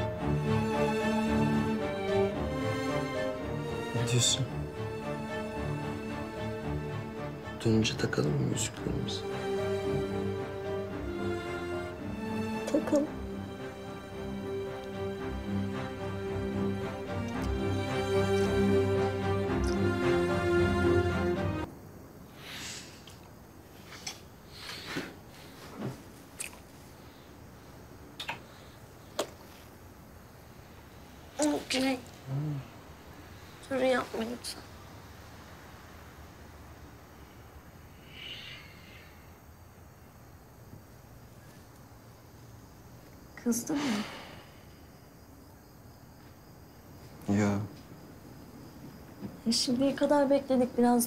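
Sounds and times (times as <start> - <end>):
crickets chirping: 0.0 - 51.0
low room hiss: 0.0 - 51.0
rustle of clothes and bedding: 23.0 - 30.0
lip smacks of kissing: 28.2 - 28.5
breaths: 38.0 - 39.5, 43.7 - 45.0.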